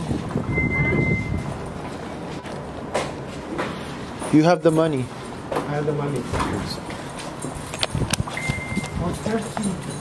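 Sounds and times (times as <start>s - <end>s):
electronic beep: 0.5s - 1.5s, 8.4s - 9.0s
footsteps walking: 1.2s - 10.0s
light metallic clinks: 4.3s - 10.0s.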